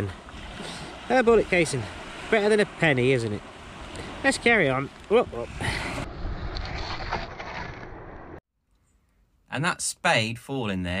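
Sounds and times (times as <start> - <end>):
wind rumble on microphone: 5.1 - 8.4.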